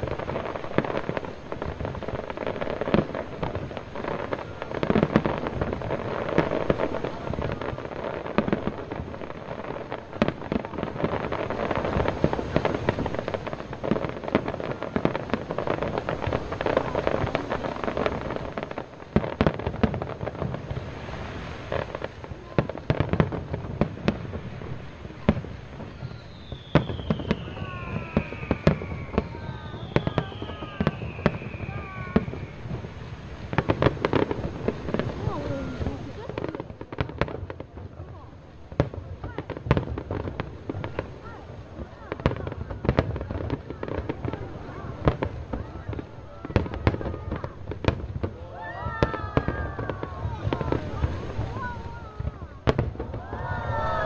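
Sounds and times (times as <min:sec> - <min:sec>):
fireworks bangs and crackles: 0:00.0 - 0:54.0
falling firework whistles: 0:25.7 - 0:36.0, 0:46.3 - 0:54.0.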